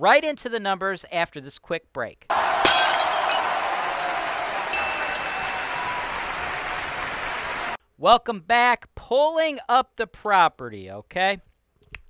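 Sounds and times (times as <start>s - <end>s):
glass tinkles: 2.7s - 3.6s, 4.7s - 6.1s.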